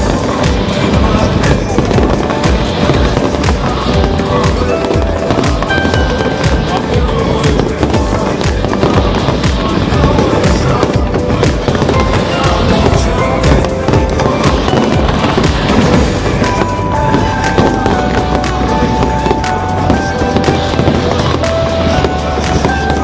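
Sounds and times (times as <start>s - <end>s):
fireworks bursting and crackling: 0.0s - 23.0s
music playing: 0.0s - 23.0s.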